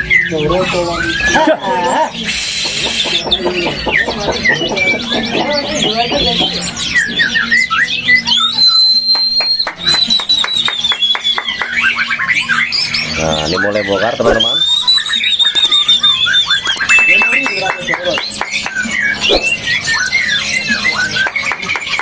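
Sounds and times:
songbird whistling: 0.0 - 22.0.

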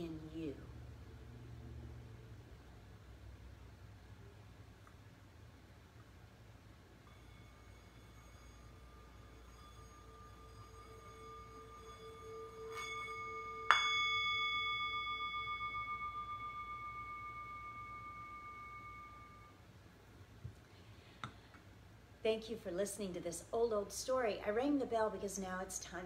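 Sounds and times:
bell ringing: 7.1 - 19.6.

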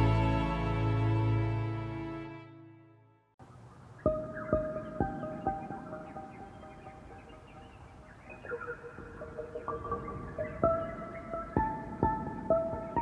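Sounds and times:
calm ambient instrumental music: 0.0 - 13.0.

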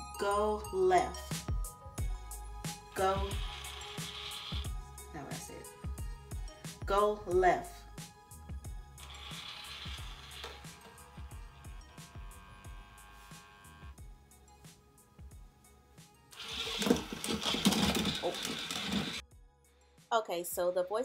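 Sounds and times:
background music with beat: 1.1 - 9.0, 9.9 - 18.0
toy robot motors whirring: 3.0 - 4.8, 9.0 - 11.0, 16.4 - 19.2.

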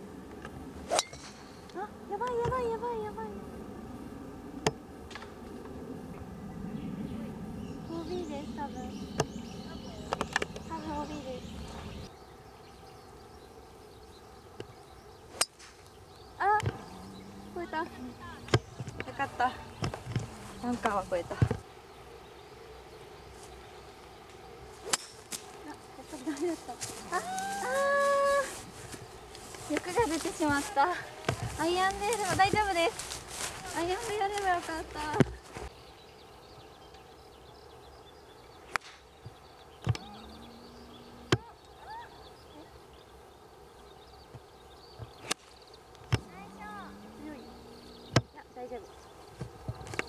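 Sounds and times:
woman's long drawn-out cry: 27.0 - 28.6, 41.8 - 42.2.

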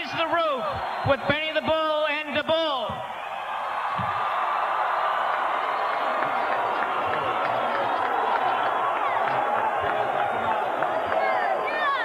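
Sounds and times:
huge crowd cheering: 0.0 - 12.0.

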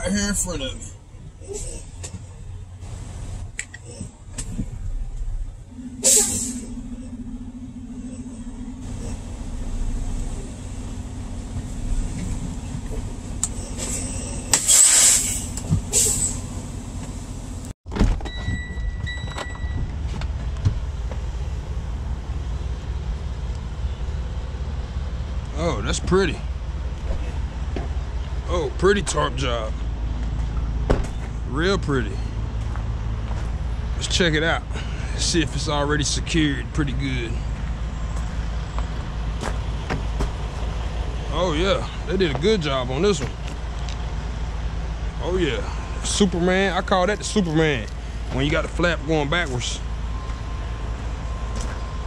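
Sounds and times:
diesel truck engine running: 0.0 - 17.8, 18.6 - 52.0
loud air hissing bursts: 6.0 - 6.6, 13.7 - 16.5.

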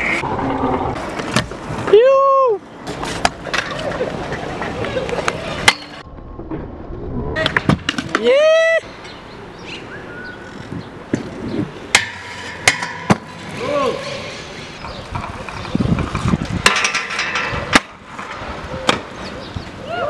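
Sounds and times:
scooter wheels rolling on concrete: 0.0 - 6.3, 7.4 - 20.0
person shouting: 1.9 - 2.6, 8.2 - 8.8.

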